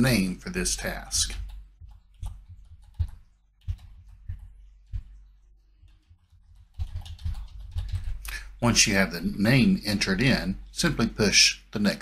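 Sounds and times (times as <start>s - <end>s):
typing on computer keyboard: 1.3s - 5.1s, 5.8s - 8.4s.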